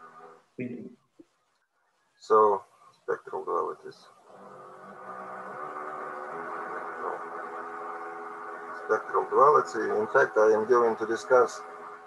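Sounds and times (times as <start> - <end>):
buzzy engine-like drone: 4.3 - 12.0.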